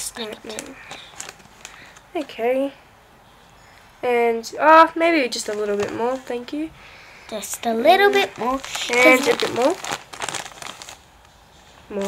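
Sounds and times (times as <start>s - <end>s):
stuffing rustling and crinkling: 0.0s - 2.8s, 4.7s - 12.0s.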